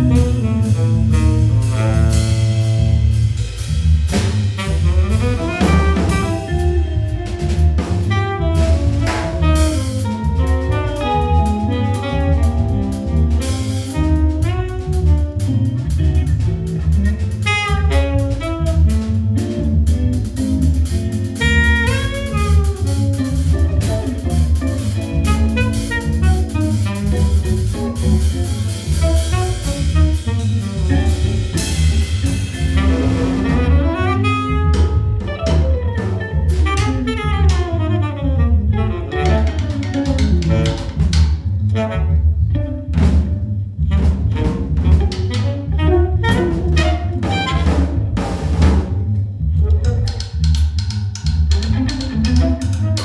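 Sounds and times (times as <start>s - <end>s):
saxophone: 0.0s - 3.4s, 4.1s - 53.0s
drum and cymbal hits: 0.0s - 37.7s, 46.2s - 49.0s.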